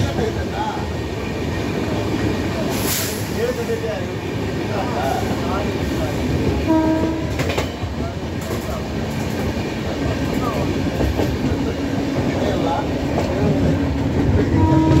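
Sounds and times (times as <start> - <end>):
train wheels on rails: 0.0 - 15.0
train horn: 6.7 - 7.5, 14.5 - 15.0.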